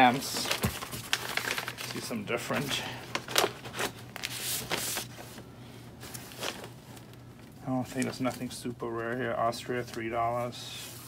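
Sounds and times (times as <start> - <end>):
paper crinkles: 0.0 - 5.4
paper envelope rustling: 0.0 - 7.2.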